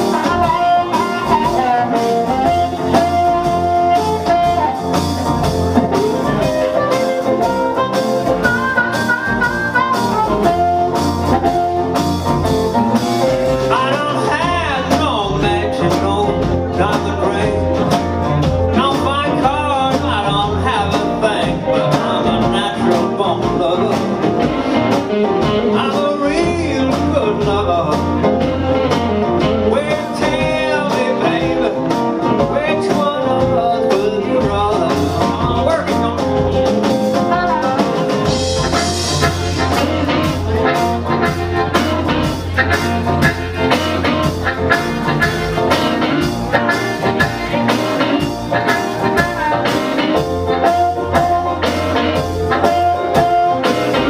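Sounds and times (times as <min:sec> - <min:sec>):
drums: 0:00.0 - 0:54.0
electric guitar: 0:00.0 - 0:54.0
piano: 0:00.0 - 0:54.0
upright bass: 0:00.0 - 0:54.0.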